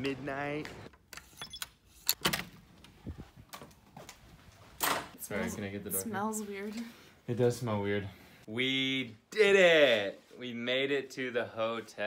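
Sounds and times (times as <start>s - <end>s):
electronic lock tone: 1.4s - 1.7s.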